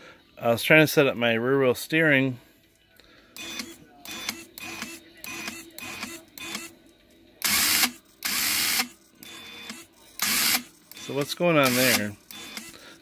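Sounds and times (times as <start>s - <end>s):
servo whirring: 7.4s - 12.8s.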